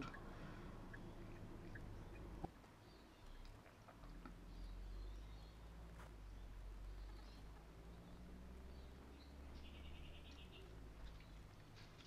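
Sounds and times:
car engine and road hum: 0:00.0 - 0:02.6, 0:04.1 - 0:12.0.

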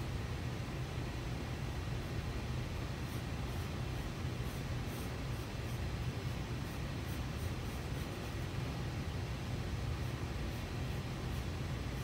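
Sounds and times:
low room hum: 0:00.0 - 0:12.0
pen scratching on paper: 0:02.9 - 0:08.5.

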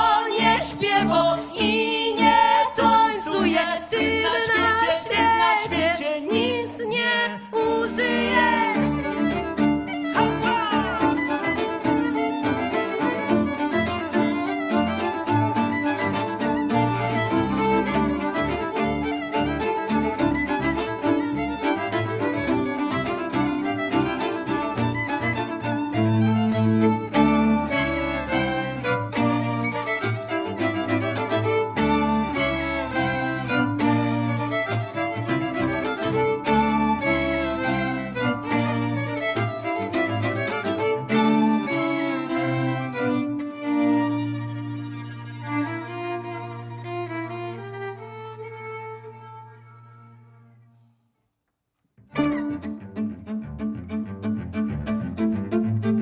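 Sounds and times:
violins playing folk tune: 0:00.0 - 0:50.6, 0:52.0 - 0:56.0
double bass: 0:07.9 - 0:47.3, 0:52.1 - 0:56.0.

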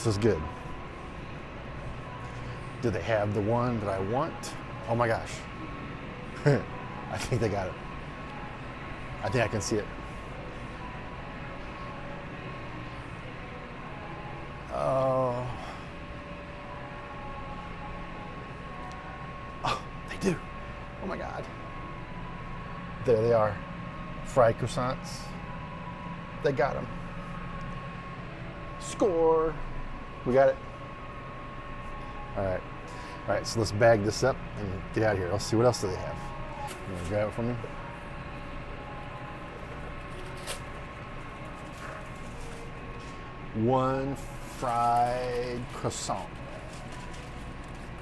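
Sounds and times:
supermarket background hum: 0:00.0 - 0:48.0.

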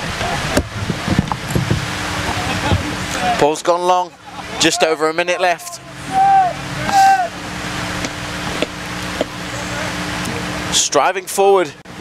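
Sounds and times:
low hum: 0:00.0 - 0:10.9
steady rain hiss: 0:00.0 - 0:12.0
players shouting: 0:02.3 - 0:08.1.

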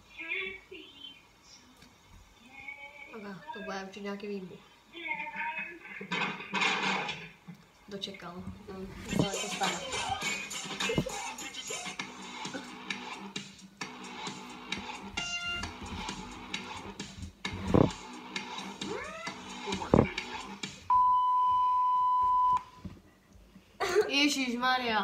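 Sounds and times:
voices from laptop speakers: 0:00.0 - 0:06.2, 0:07.9 - 0:12.6, 0:19.0 - 0:20.8
music from laptop speakers: 0:09.3 - 0:20.9
loud high beep: 0:20.9 - 0:22.6.

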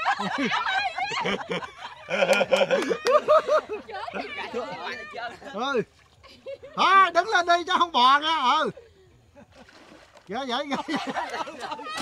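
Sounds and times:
people laughing: 0:00.0 - 0:07.2, 0:10.4 - 0:12.0.

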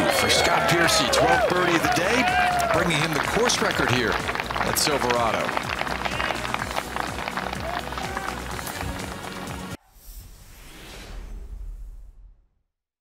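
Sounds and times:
crowd applauding and cheering: 0:00.0 - 0:09.8
music: 0:00.0 - 0:09.8
outro music: 0:01.1 - 0:09.8.

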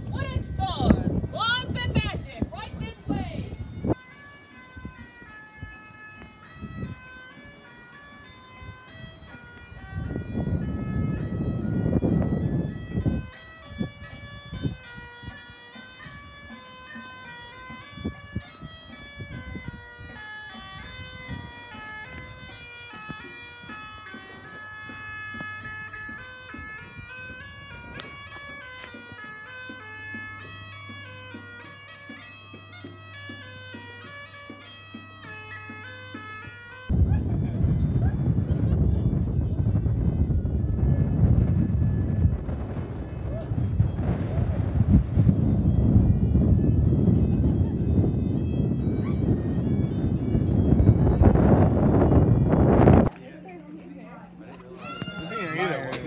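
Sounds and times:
wind hitting microphone: 0:00.0 - 0:04.0, 0:04.6 - 0:07.6, 0:08.5 - 0:16.6, 0:17.6 - 0:24.0, 0:24.8 - 0:28.6, 0:36.9 - 0:53.6
bagpipes playing over drone: 0:00.0 - 0:56.0.

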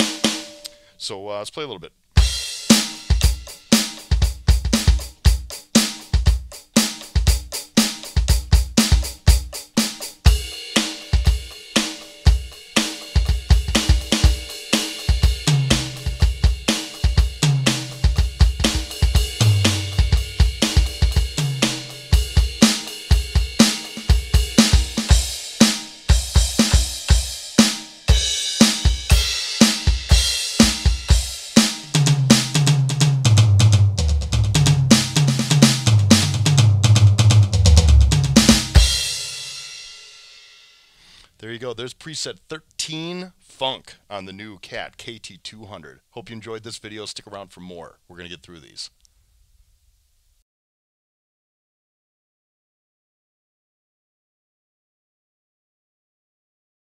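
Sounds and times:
electronic drum groove: 0:00.0 - 0:00.8, 0:02.2 - 0:40.0
cymbal ringing: 0:00.0 - 0:01.0
tom fills: 0:00.0 - 0:02.6.

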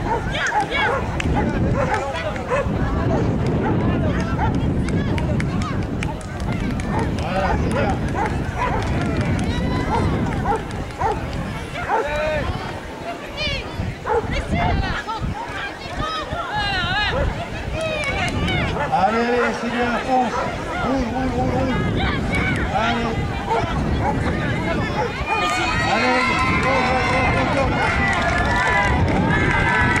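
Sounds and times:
dog barking: 0:00.0 - 0:03.8, 0:06.9 - 0:08.9, 0:09.9 - 0:11.2, 0:11.8 - 0:12.1, 0:14.0 - 0:14.8, 0:18.7 - 0:20.8, 0:25.0 - 0:25.2
crowd talking and calling out: 0:00.0 - 0:30.0
voices: 0:00.0 - 0:30.0.

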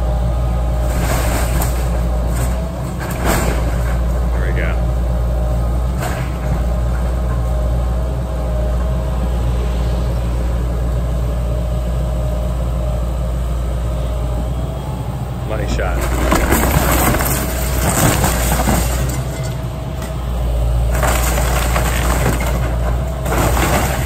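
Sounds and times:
excavator diesel engine running: 0:00.0 - 0:24.0
timber cracking: 0:15.8 - 0:19.4.

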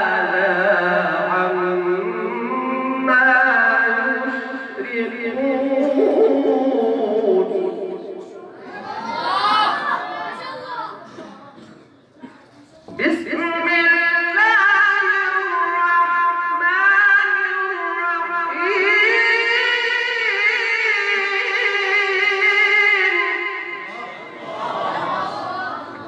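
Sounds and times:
man reciting melodically over loudspeakers: 0:00.0 - 0:09.8, 0:10.4 - 0:26.0.

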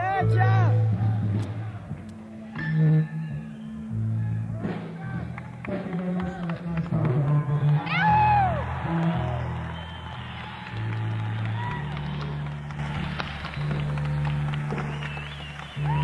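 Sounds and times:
electric bass notes: 0:00.0 - 0:16.0.

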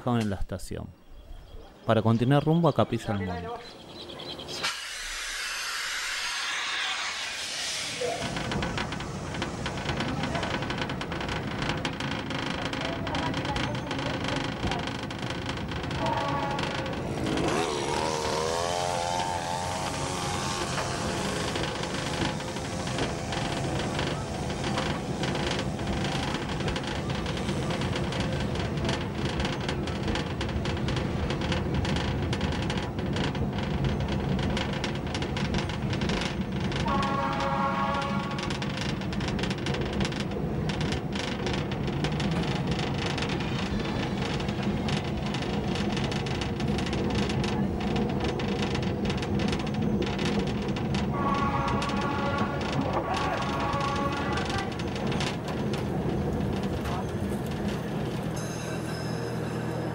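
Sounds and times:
diesel train engine drone: 0:03.4 - 0:59.9
train horn blast: 0:16.0 - 0:21.1, 0:36.8 - 0:38.5, 0:51.1 - 0:54.8.

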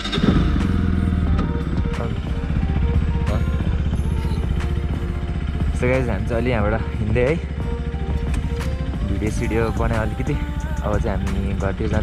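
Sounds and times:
motorcycle engine starting and idling: 0:00.0 - 0:12.0.

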